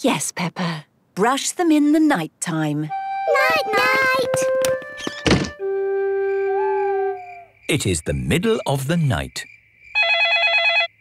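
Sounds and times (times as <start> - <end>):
held woodwind notes: 2.9 - 7.5
door shutting: 4.1 - 5.6.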